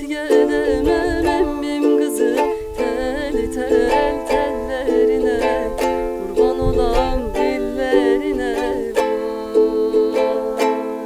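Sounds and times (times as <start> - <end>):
ukulele strumming: 0.0 - 11.0
woman singing: 0.0 - 11.0.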